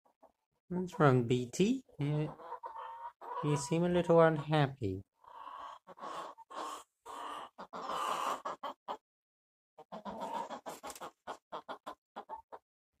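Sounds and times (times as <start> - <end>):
hen clucking: 0.2 - 9.0, 9.8 - 12.6.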